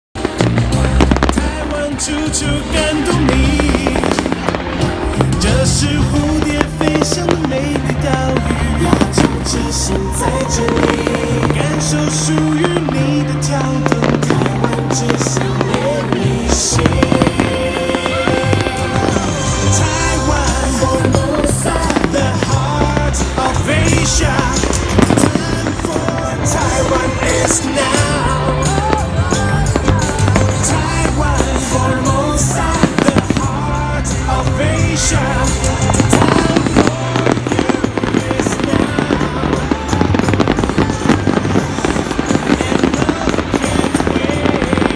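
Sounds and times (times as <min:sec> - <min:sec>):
fireworks bangs and crackles: 0:00.2 - 0:44.9
loud music with bass line: 0:00.2 - 0:44.9.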